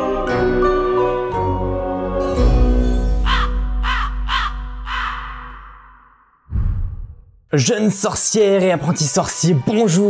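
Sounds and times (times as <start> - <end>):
crow cawing: 3.2 - 6.1.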